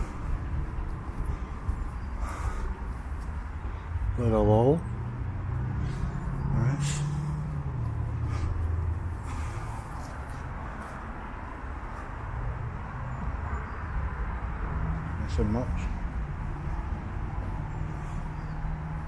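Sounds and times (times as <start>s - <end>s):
outdoor background noise: 0.0s - 19.0s
vehicle engine humming: 0.0s - 19.0s.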